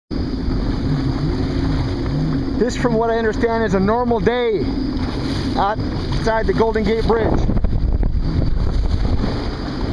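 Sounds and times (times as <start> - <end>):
jet ski engine running: 0.1 - 9.9
wind and water rumble: 0.1 - 9.9.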